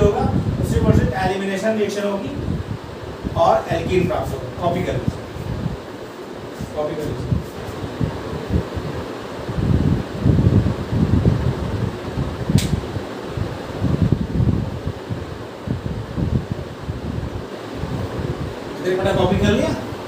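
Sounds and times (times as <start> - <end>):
wind buffeting microphone: 0.0 - 20.0
short sharp click: 12.6 - 12.8.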